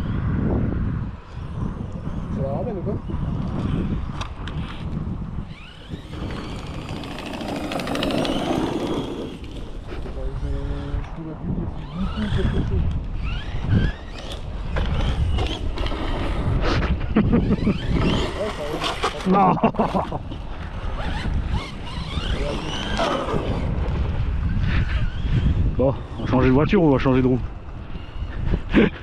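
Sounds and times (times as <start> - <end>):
wind rumble on microphone: 0.0 - 29.0
electric motor whining: 3.2 - 19.4, 20.4 - 26.2.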